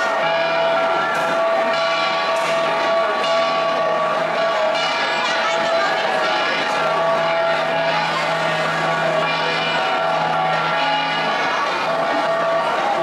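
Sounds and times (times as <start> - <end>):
bronze gong ensemble ringing: 0.0 - 13.0.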